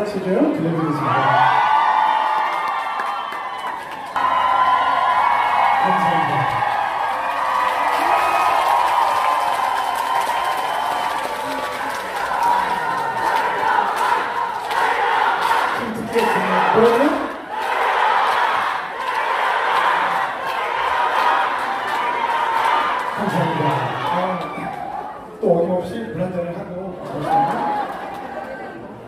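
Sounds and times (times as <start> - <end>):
audience cheering and shouting: 0.6 - 25.4, 27.0 - 28.4.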